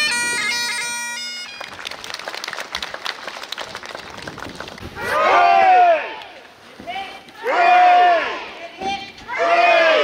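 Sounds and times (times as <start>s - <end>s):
bagpipes playing: 0.0s - 1.8s
crowd clapping: 0.9s - 5.5s.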